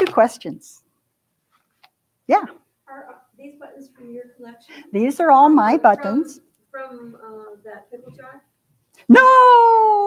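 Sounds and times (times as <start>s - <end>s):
person shouting yeah: 9.1s - 10.0s.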